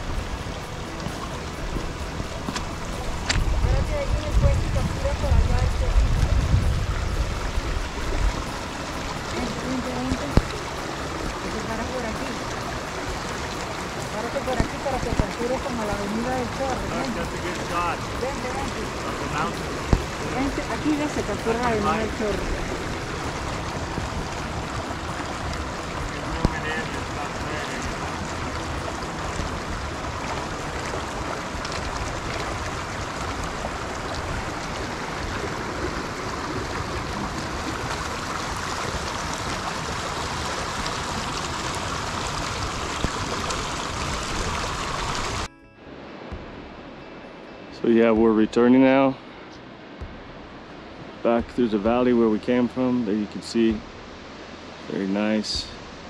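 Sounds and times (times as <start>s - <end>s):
stream rushing over rocks: 0.0s - 56.0s.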